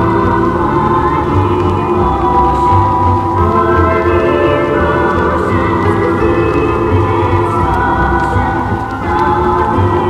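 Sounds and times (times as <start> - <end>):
choir-like singing over chords: 0.0 - 10.0.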